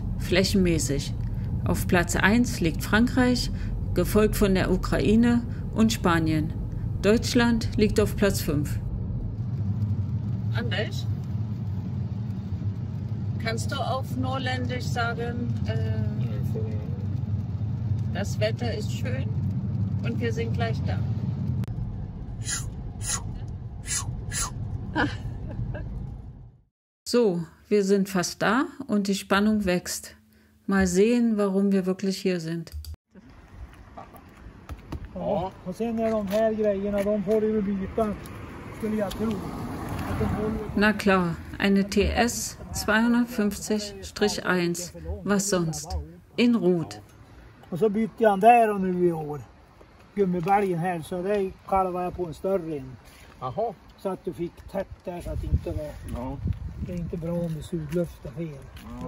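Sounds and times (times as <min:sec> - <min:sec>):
road rumble inside car: 0:00.0 - 0:26.6, 0:33.1 - 0:43.0
person talking: 0:40.7 - 0:47.0.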